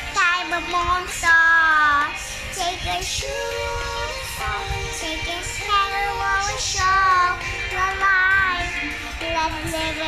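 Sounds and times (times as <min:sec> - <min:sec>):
background music: 0:00.0 - 0:10.0
girl singing pop song: 0:00.0 - 0:10.0.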